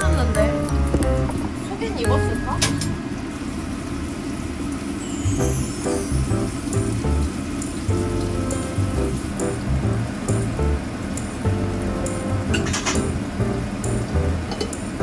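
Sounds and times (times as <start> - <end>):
oil sizzling in a frying pan: 3.2 - 15.0
music with bass beat: 5.4 - 15.0.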